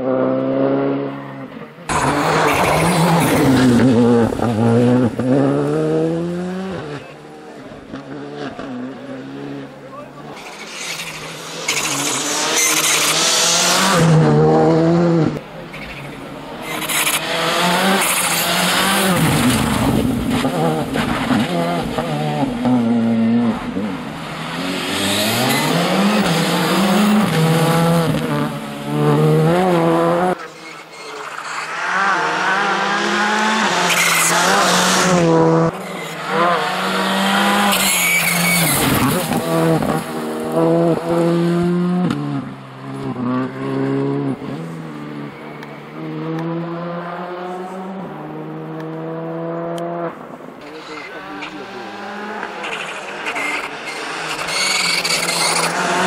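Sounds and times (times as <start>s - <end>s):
rally car engine revving: 0.0s - 56.0s.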